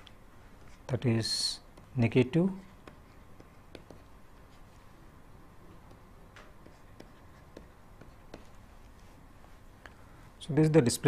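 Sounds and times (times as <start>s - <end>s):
pen scratching on paper: 2.6s - 4.7s, 6.6s - 8.7s.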